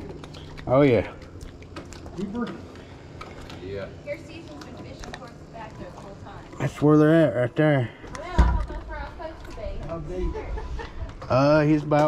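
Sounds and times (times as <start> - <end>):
man speaking: 6.6 - 8.0.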